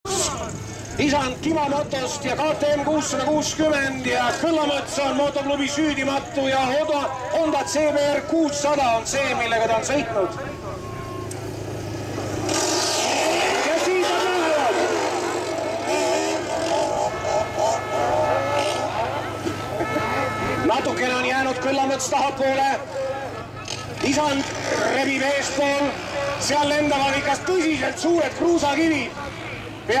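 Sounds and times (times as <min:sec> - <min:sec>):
motorcycle engines revving: 0:00.0 - 0:30.0
man commentating over loudspeaker: 0:00.1 - 0:11.3, 0:13.1 - 0:30.0.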